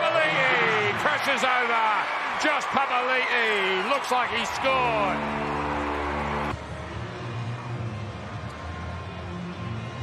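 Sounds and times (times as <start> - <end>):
crowd noise: 0.0 - 10.0
stadium music: 0.0 - 10.0.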